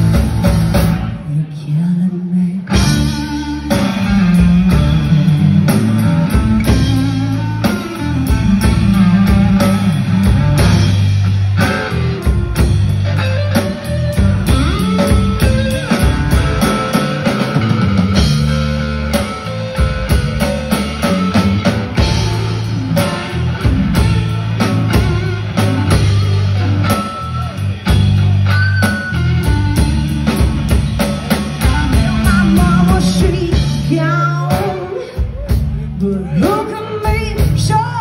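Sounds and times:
drum kit beat: 0.0s - 1.2s, 2.7s - 38.0s
electric guitars: 0.0s - 38.0s.

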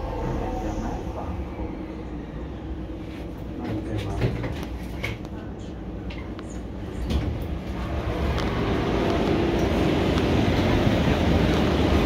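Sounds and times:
train running noise with low hum: 0.0s - 12.0s.

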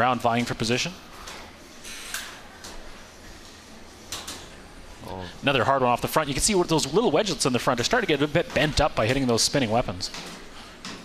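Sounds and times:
steady background hiss: 0.0s - 11.0s.

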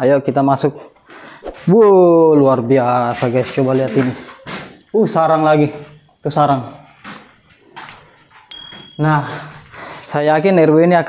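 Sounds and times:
rustling and scuffing: 1.2s - 2.0s, 2.8s - 6.1s, 6.8s - 10.3s
short high ringing tone: 8.5s - 9.6s.

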